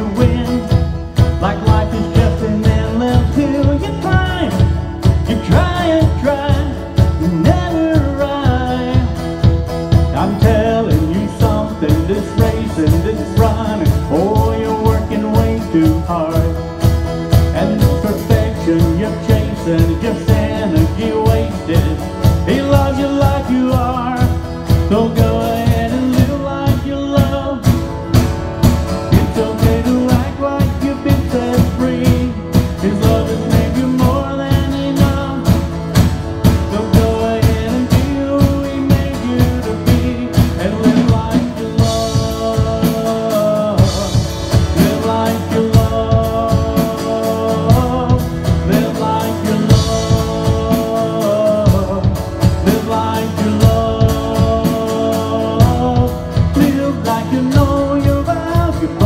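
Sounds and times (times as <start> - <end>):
drum kit beat: 0.0 - 59.0
guitar: 0.0 - 59.0
man singing: 0.0 - 59.0.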